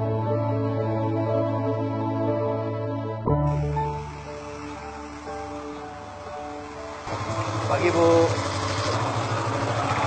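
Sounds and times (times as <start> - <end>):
motorcycle riding past: 3.9 - 10.0.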